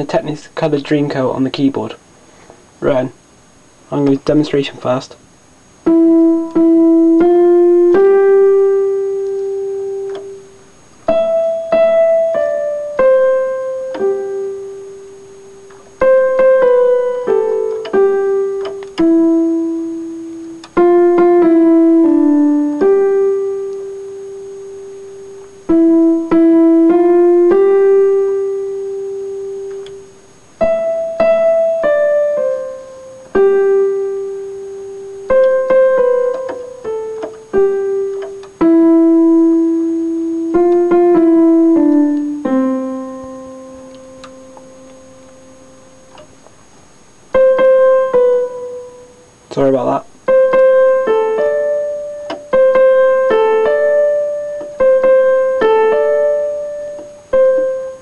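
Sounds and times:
electronic keyboard piano melody: 0:05.8 - 0:46.5, 0:47.2 - 0:58.0.

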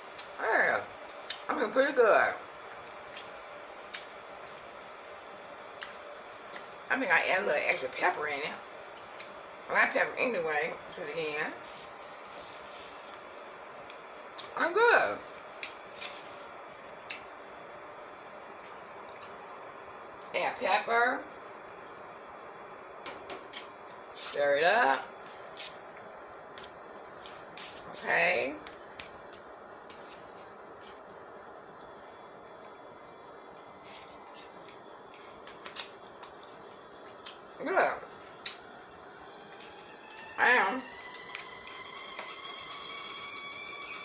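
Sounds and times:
faint room noise: 0:00.0 - 0:44.0
low steady hiss: 0:00.0 - 0:44.0.

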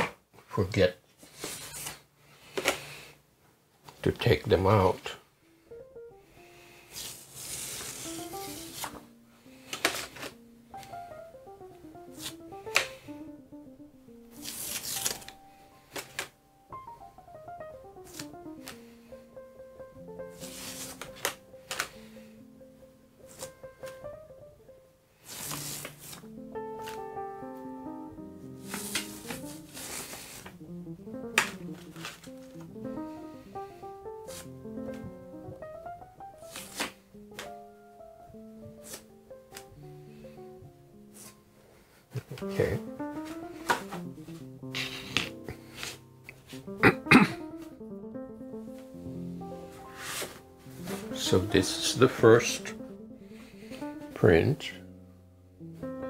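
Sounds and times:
soft background music: 0:04.4 - 0:56.0
plastic stencils crinkling: 0:06.9 - 0:11.0, 0:14.3 - 0:16.4, 0:18.0 - 0:19.0, 0:20.3 - 0:22.2, 0:23.2 - 0:24.1, 0:25.2 - 0:27.1, 0:28.6 - 0:30.6, 0:31.3 - 0:33.4, 0:36.4 - 0:37.6, 0:49.6 - 0:52.7.

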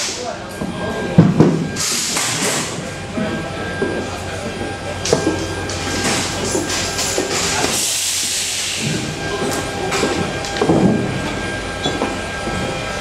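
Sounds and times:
machinery hum: 0:00.0 - 0:13.0
hissing air: 0:05.8 - 0:09.2.

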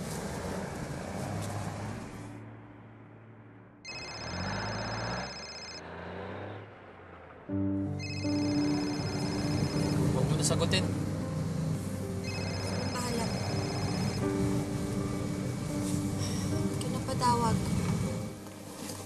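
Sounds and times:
pulsing phone ringtone: 0:03.8 - 0:05.8, 0:08.0 - 0:10.3, 0:12.2 - 0:14.2
soft background music: 0:07.4 - 0:19.0.

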